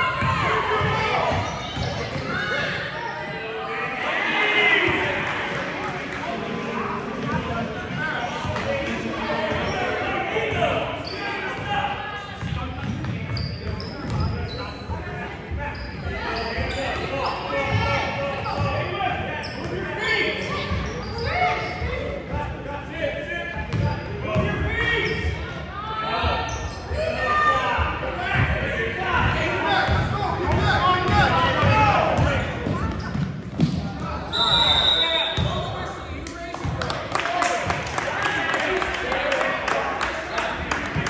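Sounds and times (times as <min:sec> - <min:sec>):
voices echoing in gym: 0:00.0 - 0:41.0.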